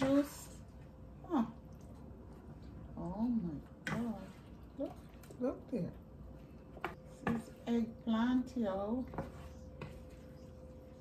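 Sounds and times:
faint hum: 0.0s - 11.0s
spatula stirring stew in skillet: 8.8s - 11.0s.

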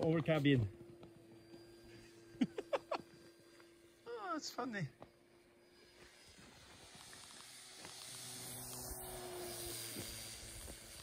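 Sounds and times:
model plane motor whirring: 0.0s - 11.0s.

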